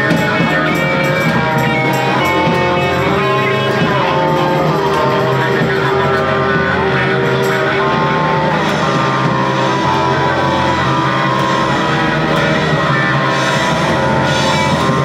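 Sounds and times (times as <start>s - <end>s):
held droning notes: 0.0s - 15.0s
live rock band playing: 0.0s - 15.0s.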